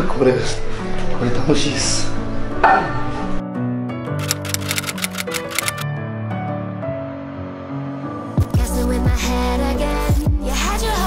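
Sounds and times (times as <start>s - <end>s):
background music with held notes: 0.0s - 11.0s
typewriter key clicks: 4.1s - 5.8s.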